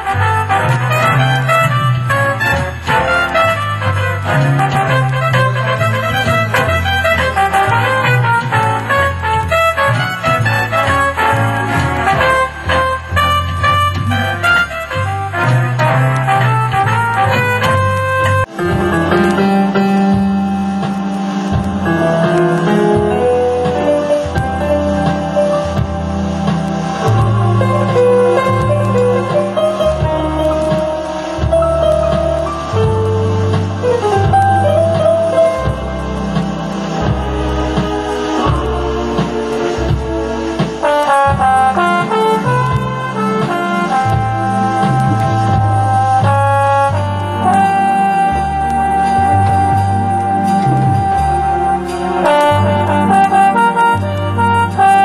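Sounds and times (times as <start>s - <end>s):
organ music: 0.0s - 55.0s.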